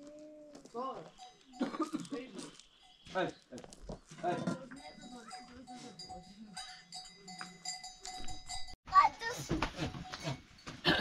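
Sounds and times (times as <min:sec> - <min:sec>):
voices: 0:00.0 - 0:07.8
small metal bell clanking: 0:00.7 - 0:03.2, 0:04.0 - 0:08.8.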